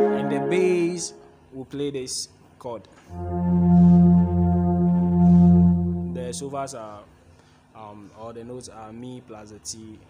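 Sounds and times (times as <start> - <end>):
electronic keyboard held low note: 3.1 - 6.8.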